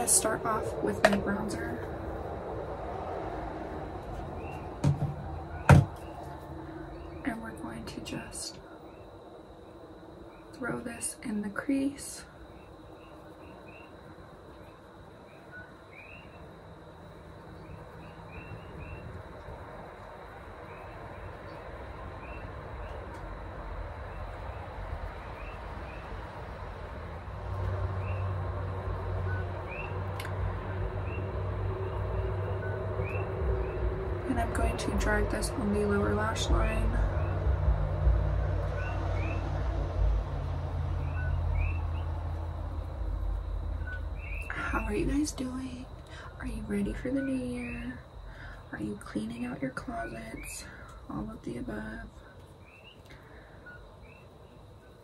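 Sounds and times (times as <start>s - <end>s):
vehicle rumble: 0.0s - 14.5s, 16.3s - 55.0s
faint bird chirps: 5.4s - 16.5s, 41.0s - 42.1s, 43.8s - 55.0s.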